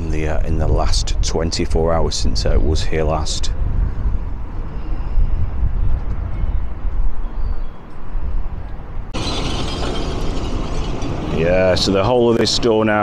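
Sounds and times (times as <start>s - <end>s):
wind buffeting microphone: 0.0s - 13.0s
bright rushing noise: 9.2s - 12.7s.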